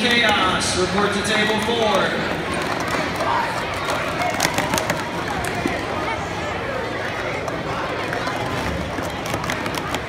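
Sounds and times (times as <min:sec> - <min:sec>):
chatter of crowd: 0:00.0 - 0:10.0
plastic cups clacking: 0:01.4 - 0:05.9, 0:07.1 - 0:10.0.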